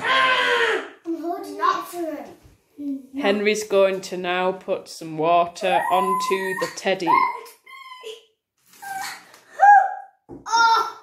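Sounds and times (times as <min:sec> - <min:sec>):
loud vocal cry: 0:00.0 - 0:00.9.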